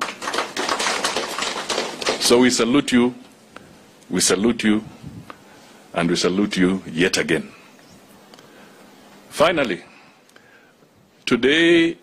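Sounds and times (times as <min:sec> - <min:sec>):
crowd applauding: 0:00.0 - 0:02.6.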